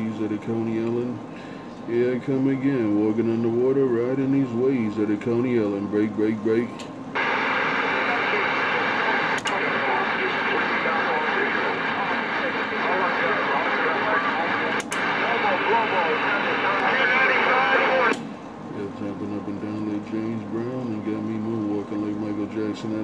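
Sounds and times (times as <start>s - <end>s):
garbled radio voice: 7.2s - 18.2s
radio static and hiss: 7.2s - 18.3s
short radio clicks: 9.3s - 9.8s, 14.7s - 15.2s, 18.0s - 18.3s.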